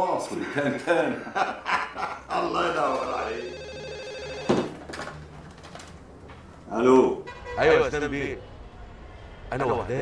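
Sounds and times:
desk telephone ringing: 0:02.8 - 0:04.9.

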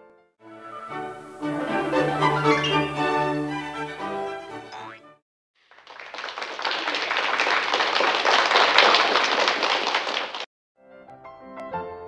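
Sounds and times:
orchestral string music: 0:00.4 - 0:04.7
applause: 0:05.6 - 0:10.5.

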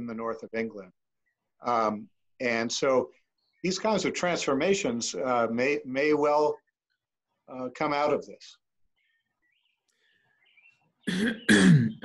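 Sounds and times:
man clearing his throat: 0:11.1 - 0:12.0.

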